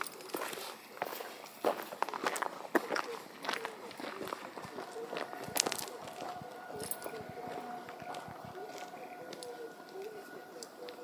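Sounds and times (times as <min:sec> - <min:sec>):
faint voices: 0:00.0 - 0:11.0
footsteps walking: 0:00.0 - 0:11.0.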